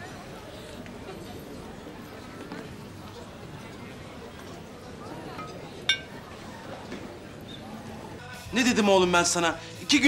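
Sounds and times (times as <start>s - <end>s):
murmur of diners' voices: 0.0s - 10.0s
glass clink: 5.4s - 6.2s.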